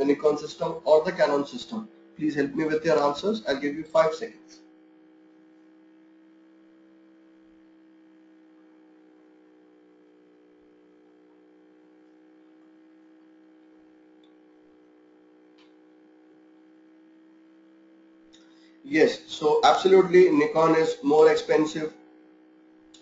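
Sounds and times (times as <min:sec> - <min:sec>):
faint electrical hum: 0:00.0 - 0:23.0.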